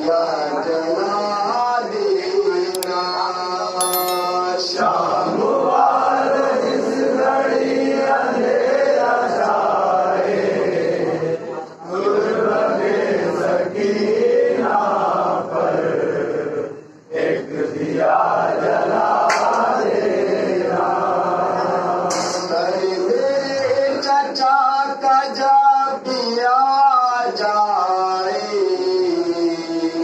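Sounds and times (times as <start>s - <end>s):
men chanting a mourning lament: 0.0s - 2.7s, 5.2s - 30.0s.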